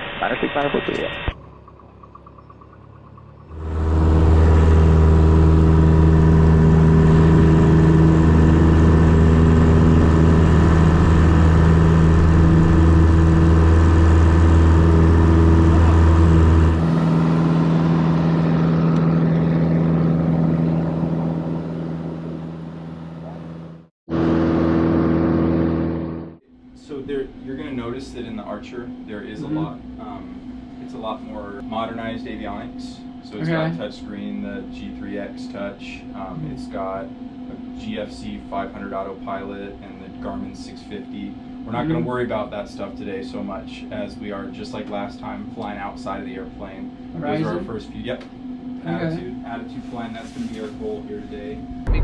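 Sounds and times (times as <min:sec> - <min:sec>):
light aircraft engine at full power: 0:01.4 - 0:26.4, 0:27.5 - 0:52.0.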